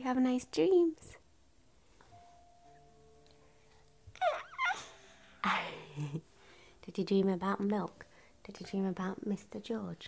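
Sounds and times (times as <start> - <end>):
baby squealing: 4.2 - 5.0.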